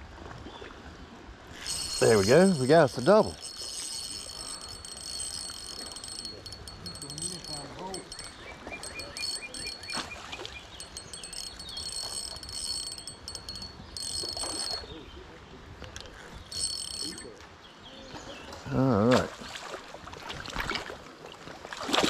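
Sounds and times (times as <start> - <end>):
fishing reel gears whirring: 1.5 - 14.9, 16.0 - 17.3.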